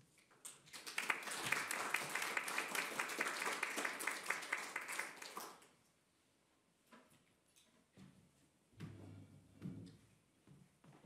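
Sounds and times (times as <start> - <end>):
audience applauding: 0.7 - 5.6.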